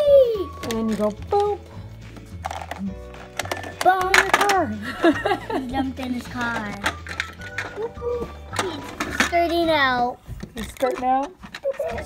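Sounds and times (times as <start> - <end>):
plastic toy clicks and knocks: 2.4 - 4.7, 6.1 - 7.8, 8.5 - 9.7, 10.4 - 12.0.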